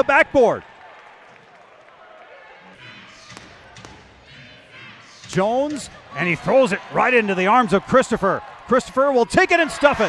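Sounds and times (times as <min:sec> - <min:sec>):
crowd murmur: 0:01.0 - 0:10.0.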